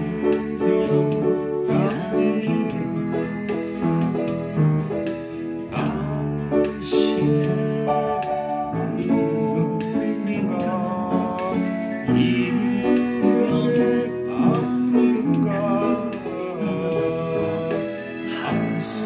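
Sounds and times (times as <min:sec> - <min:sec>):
person singing: 0:00.0 - 0:19.0
upright piano melody: 0:00.0 - 0:19.0.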